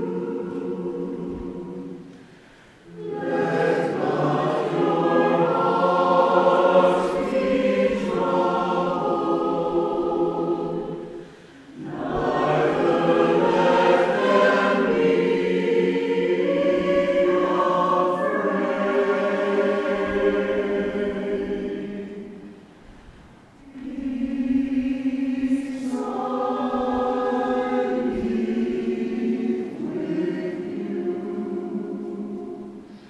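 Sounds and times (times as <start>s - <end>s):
church choir singing: 0.0s - 33.0s.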